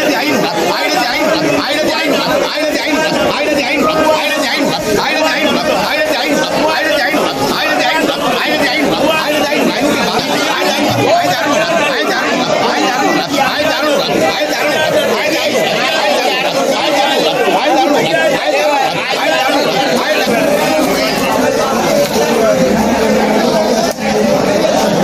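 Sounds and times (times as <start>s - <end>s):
crowd chatter: 0.0s - 25.0s.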